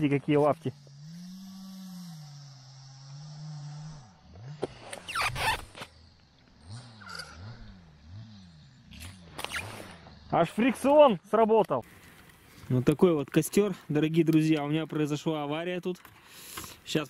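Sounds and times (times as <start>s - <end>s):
fishing reel drag whine: 0.7s - 10.4s.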